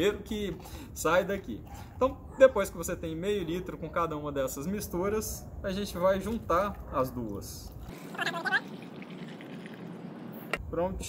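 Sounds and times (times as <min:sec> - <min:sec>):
water pouring into a plastic tub: 0:07.9 - 0:10.5.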